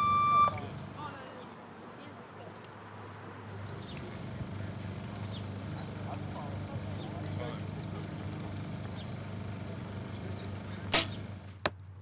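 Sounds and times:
low hum: 0.0 - 1.0.

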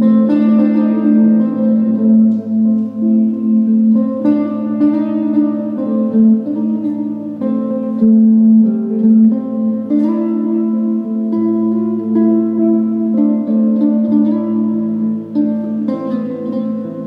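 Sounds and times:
electric guitar chords and notes: 0.0 - 17.0.

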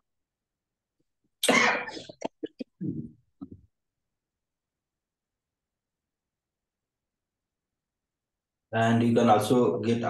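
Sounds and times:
person coughing: 1.4 - 3.1
throat clearing: 1.4 - 3.1.

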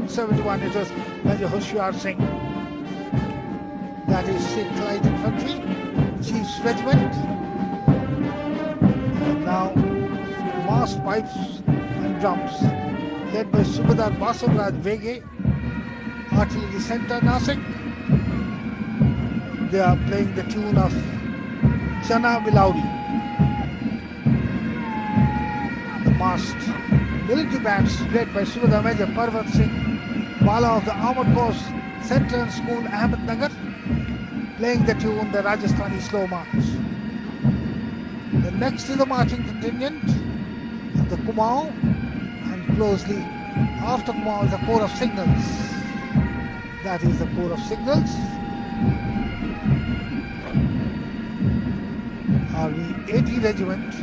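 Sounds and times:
bagpipe drones and melody: 0.0 - 54.0
drum beats: 0.0 - 54.0.

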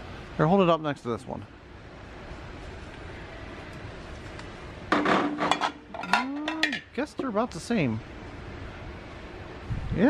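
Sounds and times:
steady background hum: 0.0 - 10.0
glass canisters clinking: 5.0 - 7.3.

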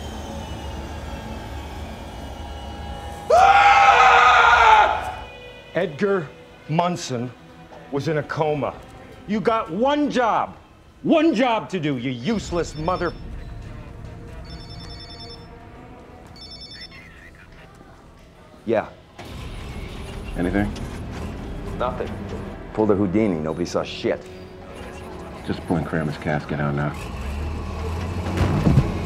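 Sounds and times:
mobile phone ringing: 12.2 - 13.4, 14.4 - 17.4
backhoe engine rumble: 24.7 - 29.0.

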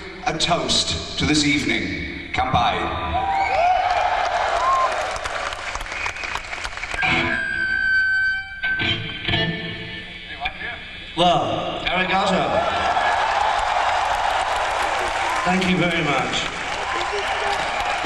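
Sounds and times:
audience cheering and shouting: 3.1 - 5.8, 12.2 - 18.0.

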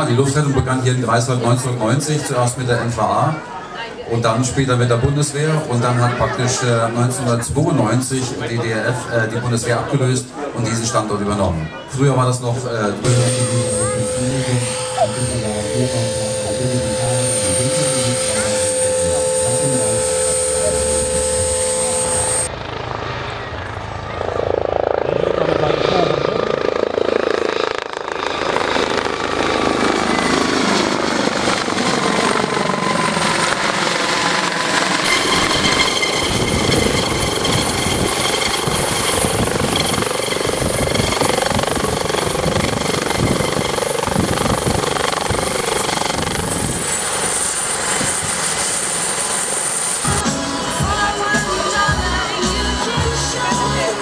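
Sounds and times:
helicopter rotor noise: 0.0 - 54.0
high turbine whine: 12.6 - 54.0.

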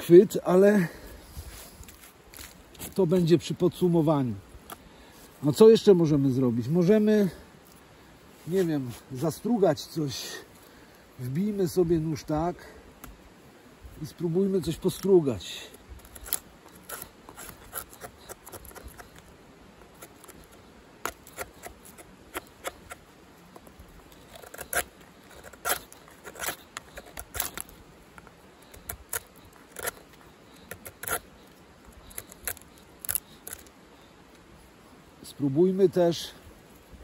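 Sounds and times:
stick scraping on knife blade: 16.0 - 23.0, 23.6 - 27.8, 28.7 - 31.4.

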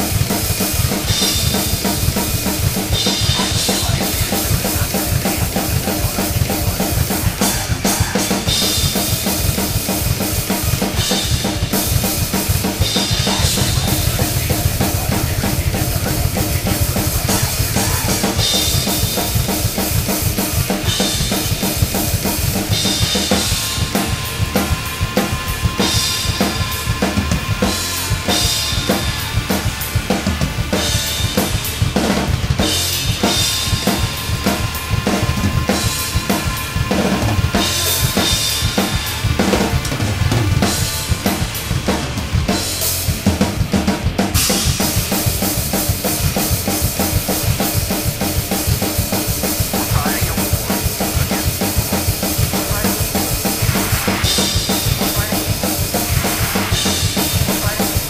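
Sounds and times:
drum kit playing fast metal: 0.0 - 58.0
recorded song playing: 3.2 - 8.6, 12.5 - 19.8, 49.4 - 58.0.

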